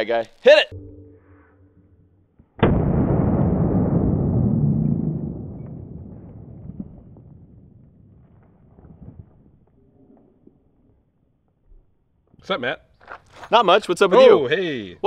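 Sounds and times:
slowed gunshot boom: 2.4 - 9.3.

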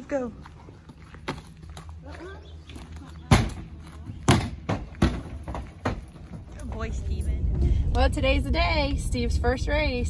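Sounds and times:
hooves on rubber ramp: 0.0 - 7.6.

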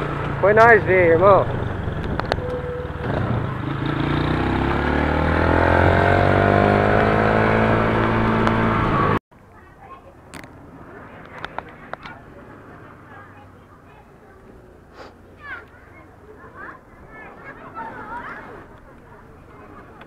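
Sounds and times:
motorcycle engine accelerating: 0.0 - 9.2.

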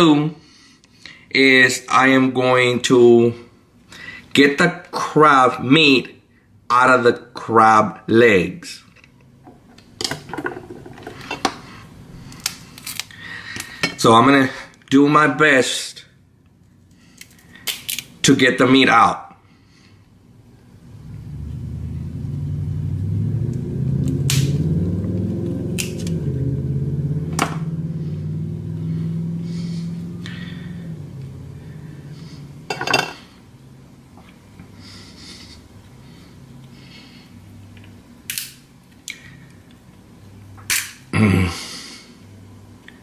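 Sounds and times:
crab shell cracking: 17.2 - 18.1.

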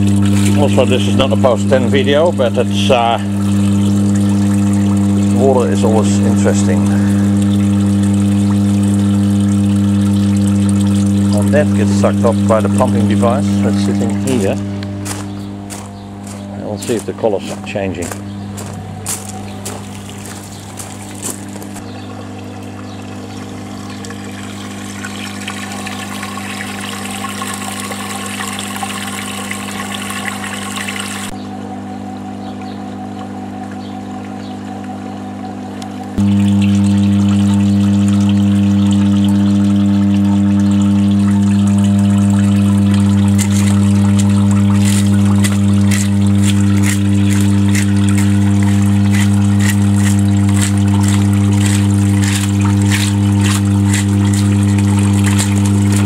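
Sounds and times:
water running: 0.0 - 31.4, 36.2 - 56.0
transformer electrical hum: 0.0 - 56.0
stick splashing and scraping: 43.3 - 56.0.

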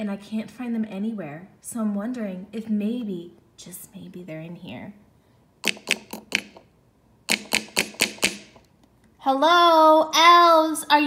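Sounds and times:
fingers knocking on toy door: 5.6 - 6.7, 7.3 - 8.6.

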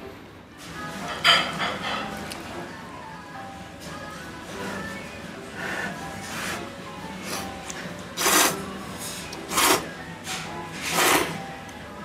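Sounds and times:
noodles slurped: 8.2 - 8.6, 9.5 - 9.9, 10.8 - 11.4.

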